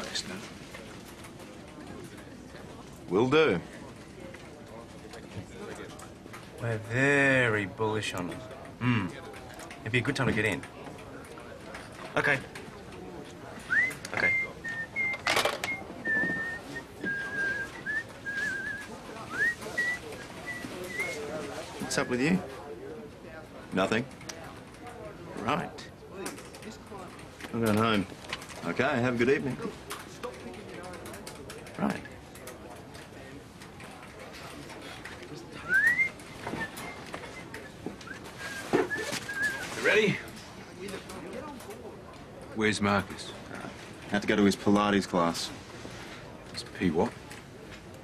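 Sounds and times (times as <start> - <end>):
man whistling a tune: 13.7 - 21.2, 35.6 - 39.7.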